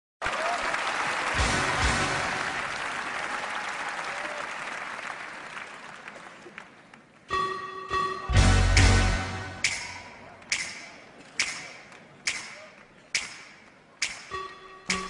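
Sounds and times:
audience applause: 0.2s - 7.2s
held musical chord: 7.3s - 9.6s.

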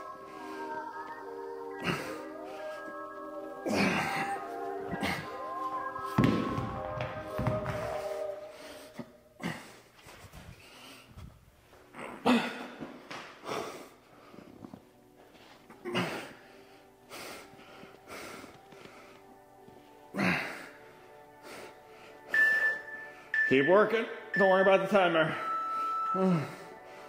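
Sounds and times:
background music: 0.0s - 27.0s
dumbbells thudding on rubber floor: 6.2s - 7.9s.

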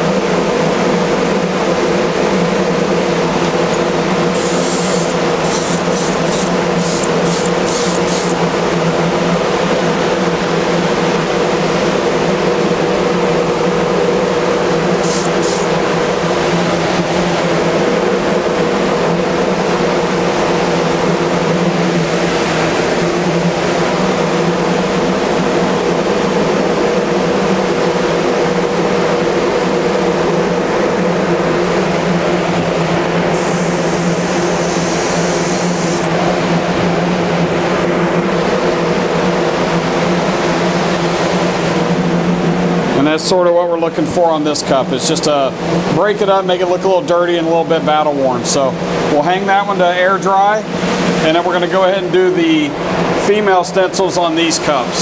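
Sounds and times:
exhaust fan humming: 0.0s - 53.4s
spray gun hissing bursts: 4.3s - 8.4s, 15.0s - 15.8s, 33.3s - 36.1s.

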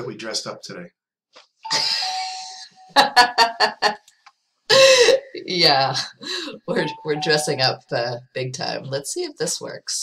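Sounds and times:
person laughing: 1.7s - 4.0s, 4.7s - 5.4s
held steady-pitch tone: 6.7s - 7.9s.

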